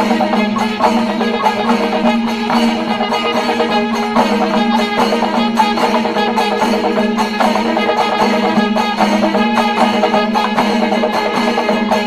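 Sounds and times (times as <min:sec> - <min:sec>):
drums beaten in dense rhythm: 0:00.0 - 0:12.0.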